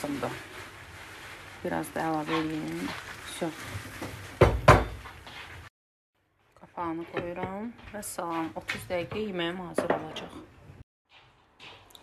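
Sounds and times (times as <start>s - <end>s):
utensil knocking frying pan: 4.4s - 5.0s.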